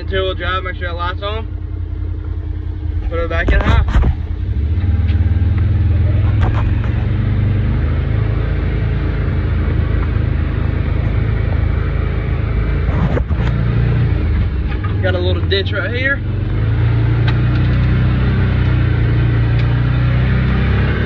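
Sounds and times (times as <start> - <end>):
utility vehicle engine droning: 0.0 - 21.0.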